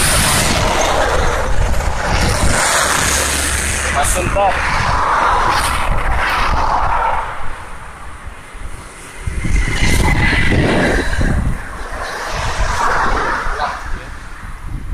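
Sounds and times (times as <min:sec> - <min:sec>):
cars and motorbikes passing: 0:00.0 - 0:14.9
steady low rumble: 0:00.0 - 0:14.9.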